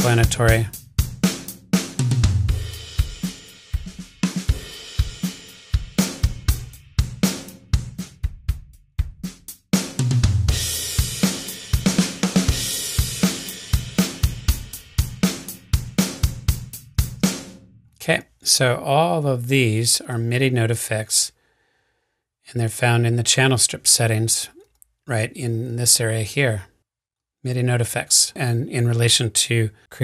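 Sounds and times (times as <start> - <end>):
drum beat: 0.0 - 17.6.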